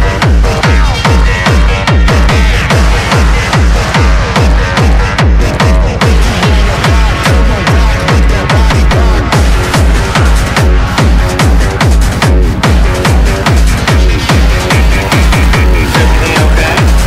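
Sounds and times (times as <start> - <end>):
percussion and synths: 0.0 - 17.0
techno kick drum beat: 0.0 - 17.0.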